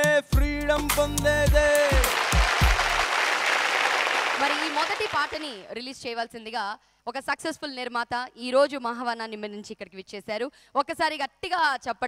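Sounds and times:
band's deep beats: 0.4s - 3.1s
audience applauding: 1.7s - 5.6s.

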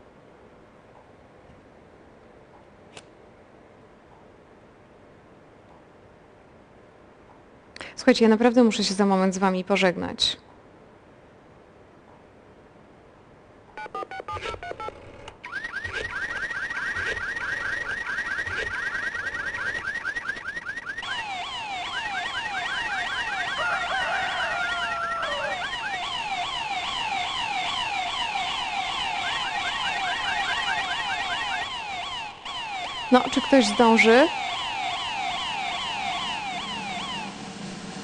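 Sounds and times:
siren-like alarm sweeps: 15.4s - 38.0s
electronic beeps: 26.3s - 37.4s.

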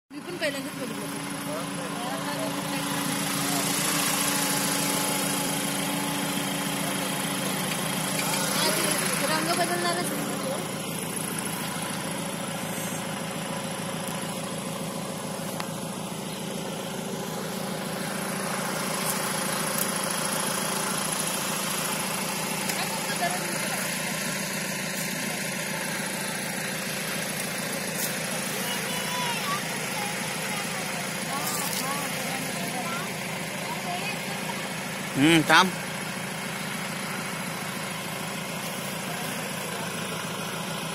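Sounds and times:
engine idling: 0.1s - 40.9s.

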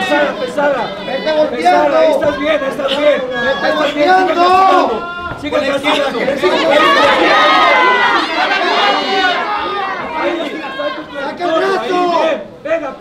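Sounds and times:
people shouting: 0.0s - 12.6s.

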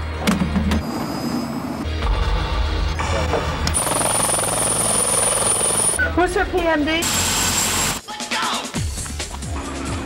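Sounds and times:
background music: 0.0s - 10.0s
helicopter rotor chopping: 3.7s - 6.0s.

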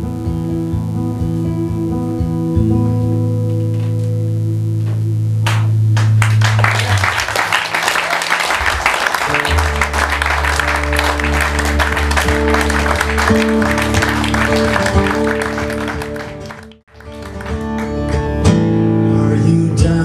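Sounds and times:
acoustic guitar playing: 0.0s - 20.0s
audience clapping: 5.4s - 18.6s.

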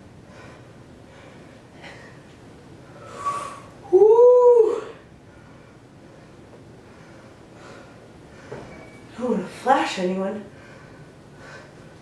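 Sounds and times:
woman breathing: 0.2s - 2.3s, 2.9s - 3.8s, 4.8s - 9.1s, 10.5s - 12.0s.

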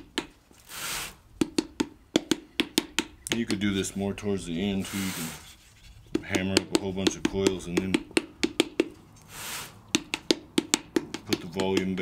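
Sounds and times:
soft hiss: 0.5s - 1.3s, 4.4s - 6.1s
paddle slapping wet clay: 10.0s - 12.0s.

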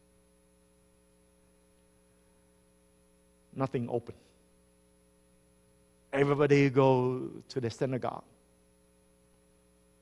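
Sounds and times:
faint electrical hum: 0.0s - 10.0s
spoken word: 6.2s - 7.2s.

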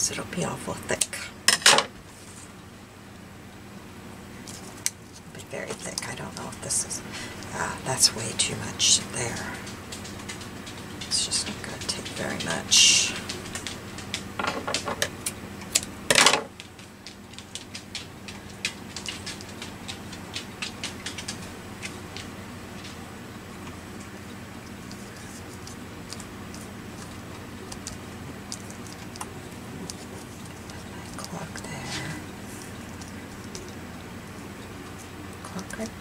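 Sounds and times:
low steady hum: 0.0s - 36.0s
soft rustling of fibres: 2.0s - 2.6s, 16.9s - 35.8s.

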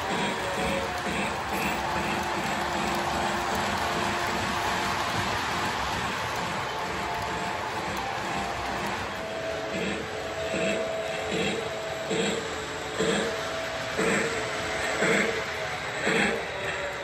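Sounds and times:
model train cars rolling on track: 0.0s - 17.0s.

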